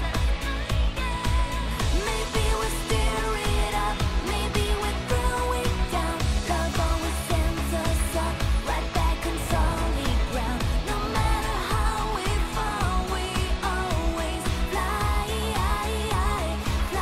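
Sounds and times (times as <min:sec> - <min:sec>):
person singing pop song: 0:00.0 - 0:17.0.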